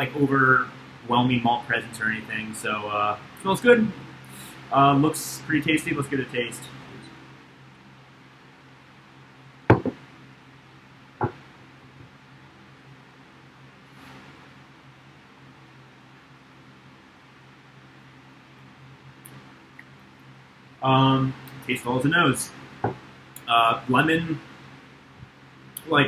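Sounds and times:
steady low hum: 0:00.0 - 0:26.0
glass knocking on a table: 0:09.7 - 0:10.0.

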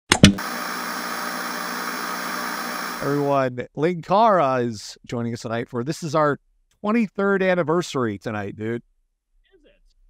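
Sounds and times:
tv static hiss: 0:00.4 - 0:03.4.

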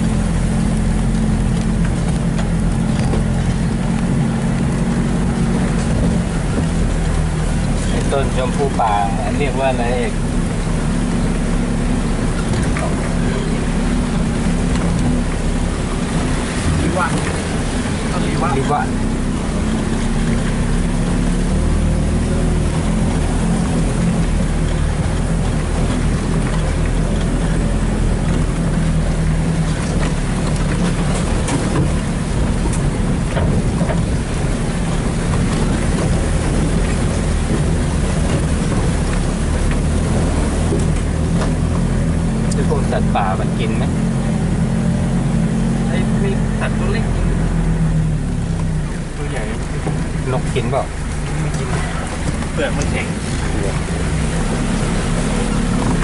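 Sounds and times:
vehicle engine droning: 0:00.0 - 0:56.0.

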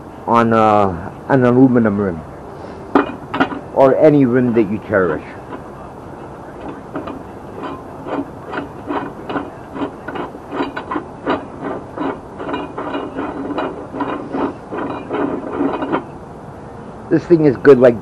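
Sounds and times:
tire changer clicking and creaking: 0:02.9 - 0:16.7.

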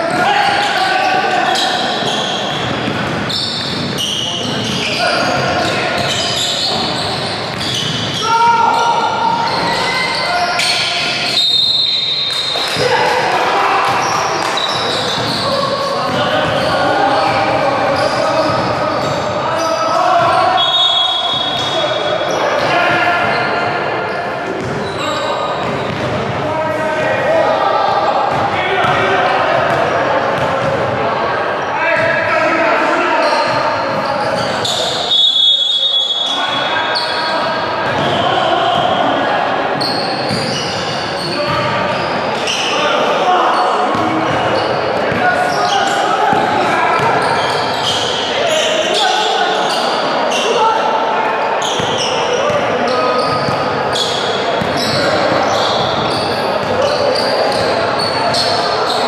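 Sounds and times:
players calling out: 0:00.0 - 0:59.0.

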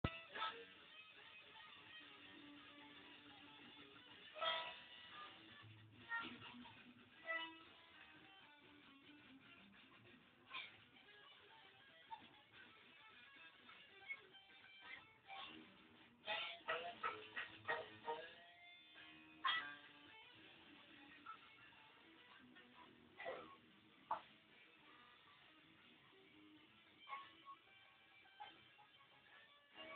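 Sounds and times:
electric guitar notes: 0:00.0 - 0:29.9.

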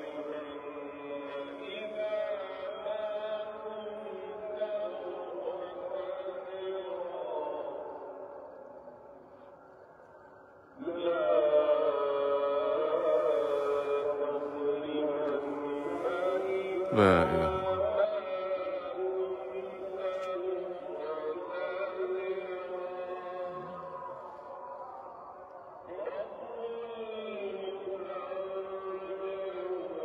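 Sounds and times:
man chanting call to prayer: 0:00.0 - 0:08.1, 0:10.8 - 0:24.8, 0:25.9 - 0:30.0
man singing over loudspeakers: 0:00.0 - 0:08.2, 0:10.8 - 0:25.3, 0:25.9 - 0:30.0.

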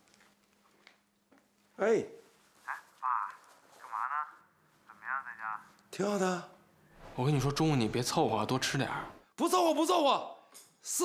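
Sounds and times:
man speaking through telephone: 0:02.6 - 0:05.7.

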